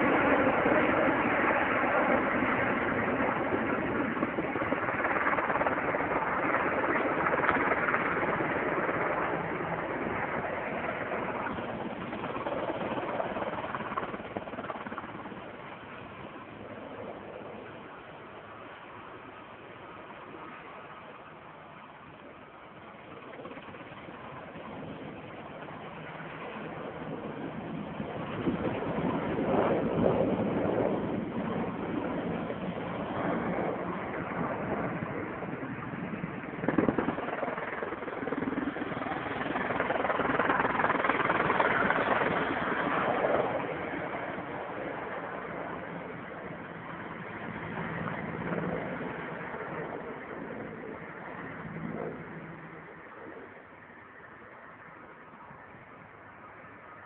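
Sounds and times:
aircraft flying low: 0.0s - 57.0s.

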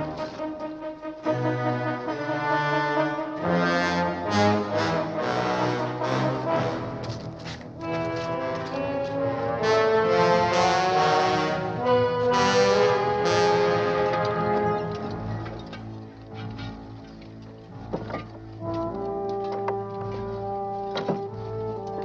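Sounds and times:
orchestral music with brass: 0.0s - 22.0s.

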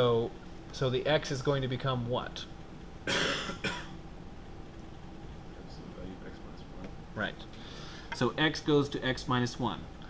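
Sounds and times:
man coughing: 3.0s - 4.0s.

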